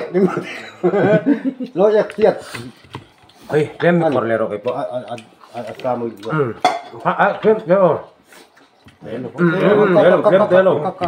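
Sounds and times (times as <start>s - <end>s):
men talking: 0.0s - 11.0s
crockery clinking on a plate: 6.6s - 7.0s.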